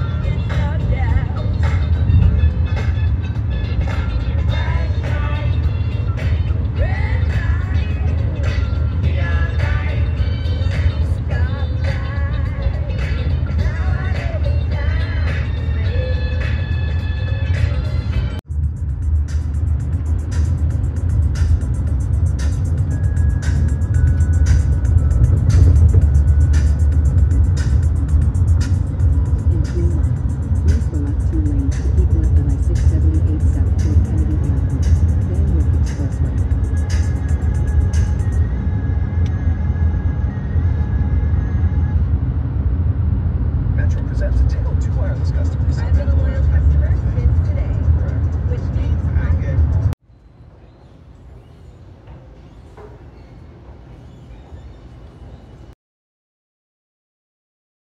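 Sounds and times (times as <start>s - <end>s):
music playing: 0.0s - 42.8s, 43.8s - 50.0s
car road and engine rumble: 0.0s - 50.0s.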